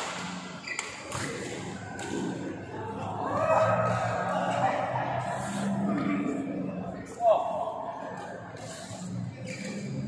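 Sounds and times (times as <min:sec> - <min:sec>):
voices echoing in a hall: 0:00.0 - 0:10.0.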